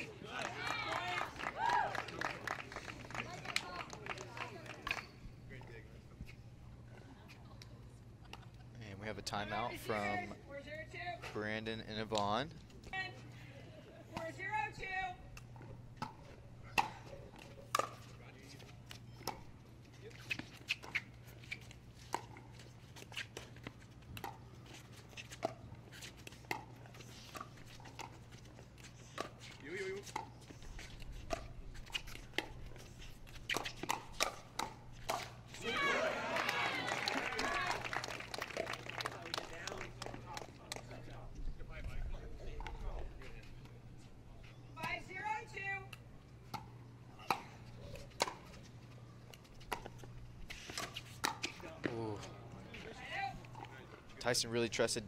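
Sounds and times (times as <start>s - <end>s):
crowd cheering: 0.0s - 4.7s, 35.6s - 40.0s.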